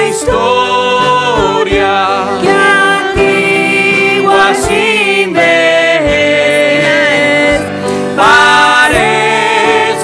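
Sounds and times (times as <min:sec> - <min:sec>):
instrumental accompaniment: 0:00.0 - 0:10.0
woman singing a hymn: 0:00.0 - 0:10.0.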